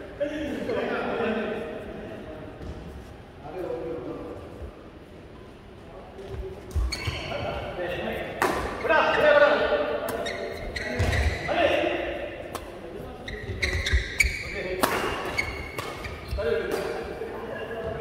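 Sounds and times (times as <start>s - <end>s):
voices echoing in a hall: 0.0s - 18.0s
rackets striking shuttlecock: 14.8s - 17.0s.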